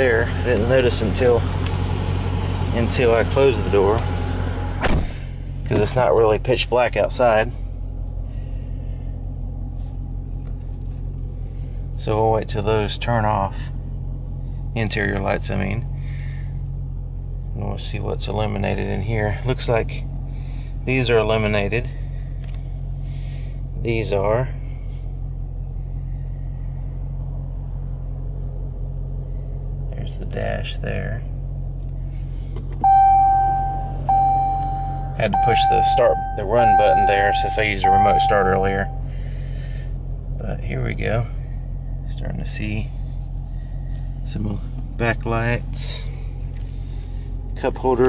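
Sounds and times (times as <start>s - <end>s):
car engine idling: 0.0s - 48.0s
low cabin hum: 0.0s - 48.0s
dashboard warning chime: 32.8s - 39.1s.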